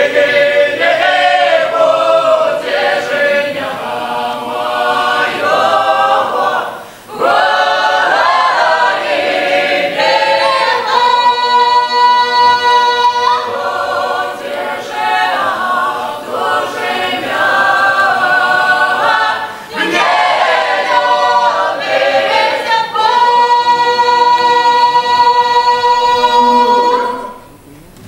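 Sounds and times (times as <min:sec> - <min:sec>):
mixed choir singing a cappella: 0:00.0 - 0:27.6.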